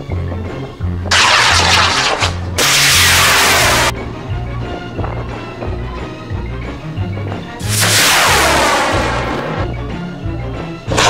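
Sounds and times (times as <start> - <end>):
rocket motors hissing: 1.1 - 3.9, 7.6 - 9.6.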